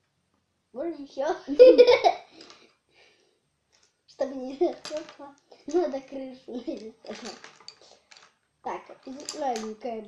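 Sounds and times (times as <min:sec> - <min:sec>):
children speaking: 0:04.2 - 0:07.4.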